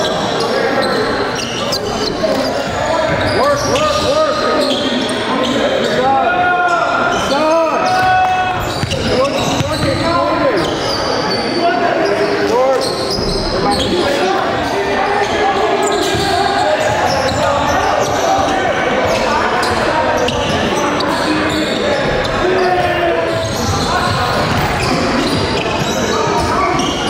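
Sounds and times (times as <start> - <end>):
players' voices: 0.0 - 27.0.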